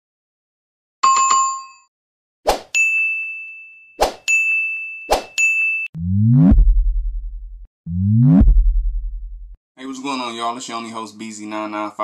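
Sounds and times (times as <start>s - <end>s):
ringing ding: 2.8s - 5.9s
deep pulsing bass hit: 6.0s - 9.6s.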